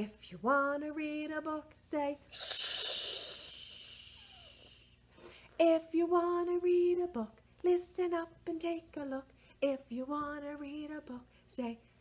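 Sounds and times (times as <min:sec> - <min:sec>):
person singing: 0:00.9 - 0:04.8
person shushing: 0:02.3 - 0:04.9.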